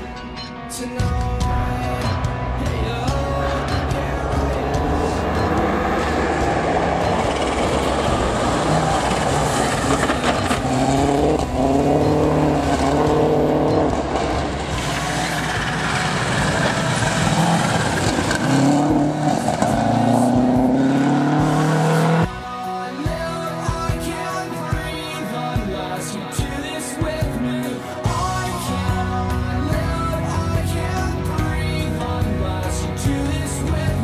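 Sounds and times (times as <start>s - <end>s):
tyres on gravel: 1.2s - 21.6s
rally car engine revving: 1.6s - 22.3s.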